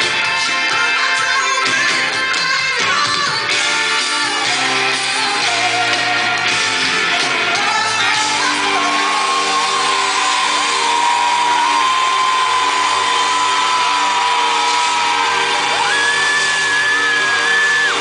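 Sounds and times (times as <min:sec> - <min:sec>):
live pop-rock band playing: 0:00.0 - 0:18.0
crowd whooping: 0:08.1 - 0:18.0.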